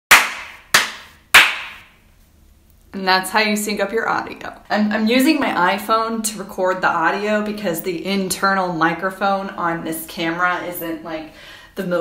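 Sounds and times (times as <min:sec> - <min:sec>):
sharp hand claps: 0:00.1 - 0:01.9.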